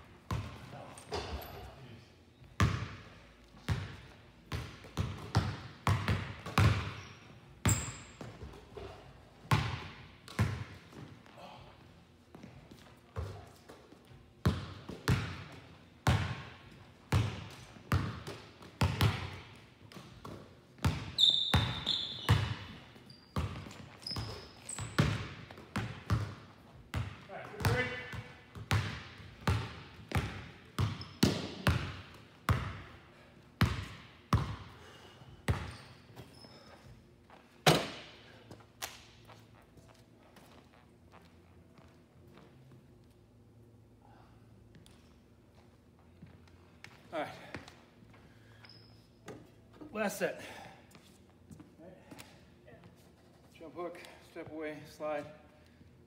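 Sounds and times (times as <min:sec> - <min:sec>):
basketballs bouncing on hardwood floor: 0:02.6 - 0:11.1, 0:13.2 - 0:22.8, 0:23.4 - 0:32.9, 0:33.6 - 0:34.7, 0:35.5 - 0:35.8
sneaker squeaks: 0:06.6 - 0:09.0, 0:20.8 - 0:25.5, 0:30.8 - 0:31.6, 0:35.5 - 0:38.0, 0:48.4 - 0:49.8.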